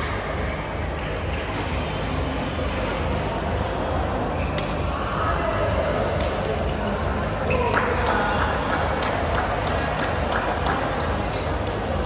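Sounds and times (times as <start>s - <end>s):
large hall hum: 0.0s - 12.0s.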